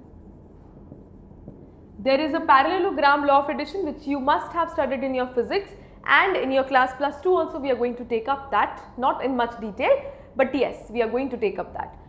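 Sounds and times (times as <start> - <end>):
marker writing on whiteboard: 0.0 - 1.8
low room hum: 0.0 - 12.0.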